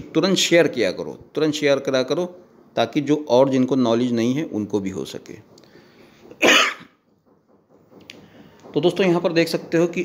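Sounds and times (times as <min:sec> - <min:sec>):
man coughing: 0:06.4 - 0:07.0.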